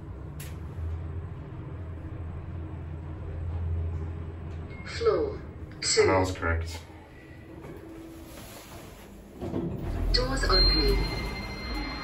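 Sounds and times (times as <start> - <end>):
lift low steady hum: 0.0 - 12.0
lift doors sliding rumble: 6.8 - 12.0.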